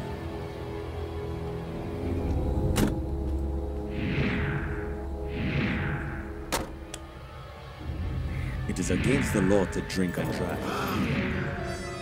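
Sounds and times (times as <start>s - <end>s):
dark musical drone: 0.0s - 12.0s.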